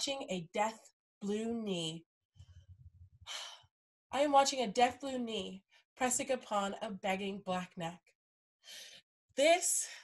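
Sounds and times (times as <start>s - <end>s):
woman speaking: 0.0s - 2.0s, 4.1s - 8.0s, 9.4s - 10.0s.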